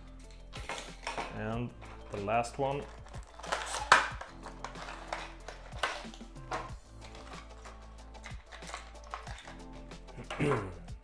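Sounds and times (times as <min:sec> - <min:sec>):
background music: 0:00.0 - 0:11.0
plastic packaging crinkling: 0:00.5 - 0:09.7.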